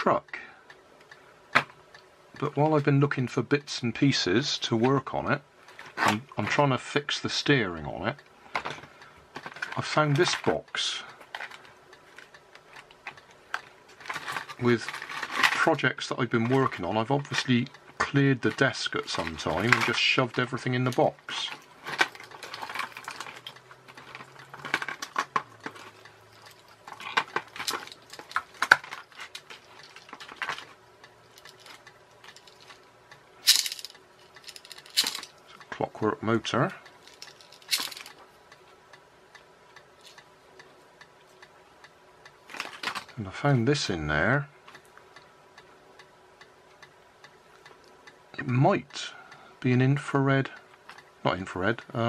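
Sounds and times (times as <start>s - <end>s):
faint steady hum: 0.0s - 52.0s
small parts clicking and rattling: 8.5s - 35.5s, 36.8s - 38.3s, 40.0s - 40.3s, 42.4s - 43.2s
rustling clatter: 11.2s - 15.7s, 21.4s - 35.4s, 37.0s - 38.2s.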